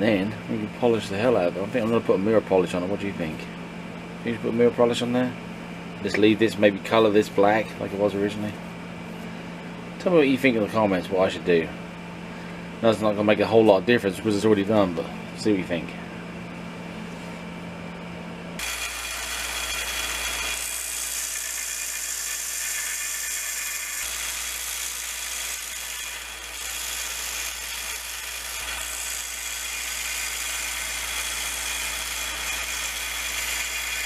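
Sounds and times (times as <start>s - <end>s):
belt sander sanding wood: 18.6s - 34.0s.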